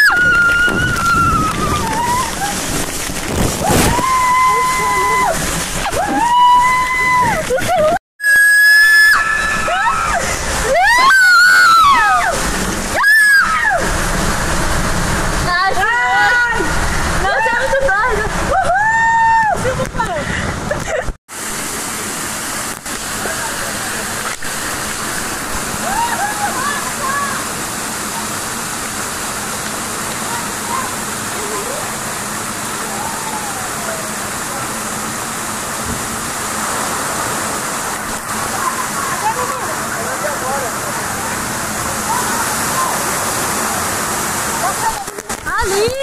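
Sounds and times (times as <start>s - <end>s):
water splashing into pool: 0.0s - 18.7s
water running down slides: 0.0s - 46.0s.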